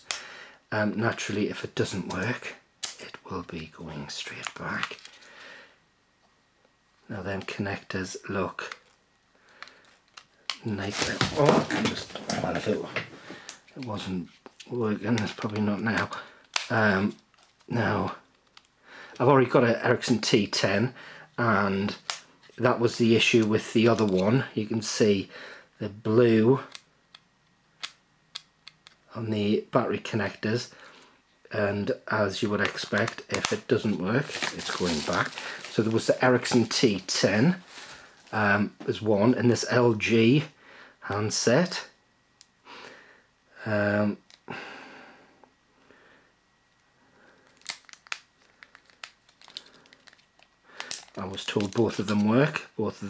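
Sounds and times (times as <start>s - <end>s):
plastic packaging crinkling: 9.7s - 18.7s, 32.4s - 38.3s, 47.4s - 52.6s.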